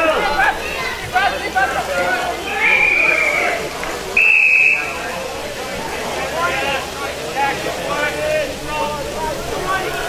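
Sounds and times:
players and spectators voices: 0.0s - 10.0s
shrill whistle blasts: 2.7s - 3.6s, 4.2s - 5.0s.

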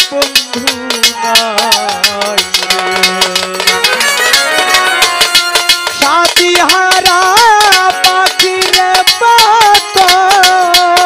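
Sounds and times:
metallic percussion beat: 0.0s - 11.0s
violin melody: 0.4s - 10.2s.

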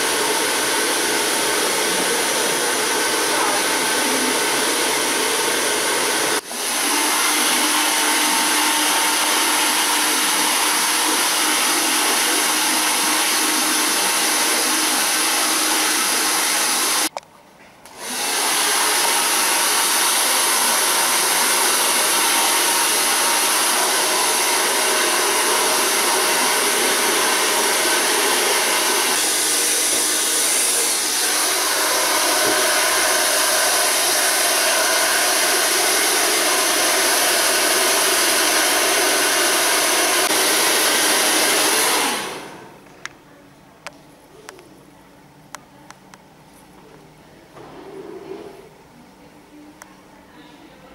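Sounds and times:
hair dryer running: 0.0s - 17.1s, 17.9s - 42.8s.

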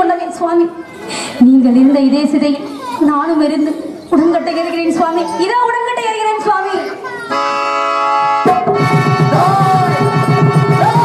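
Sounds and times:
harmonium chord: 7.3s - 10.8s
drum beat: 8.4s - 11.0s.

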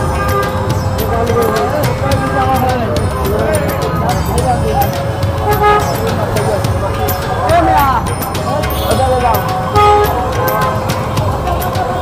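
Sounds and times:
street traffic din: 0.0s - 12.0s
voices: 0.0s - 12.0s.

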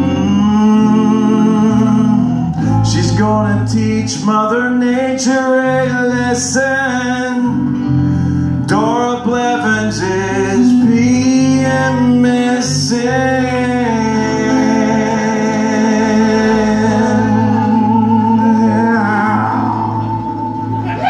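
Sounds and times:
man singing: 0.0s - 8.0s, 8.6s - 20.4s.

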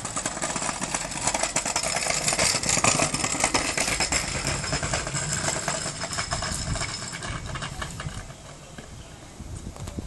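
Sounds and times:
scooter wheels rolling on concrete: 0.0s - 10.0s.

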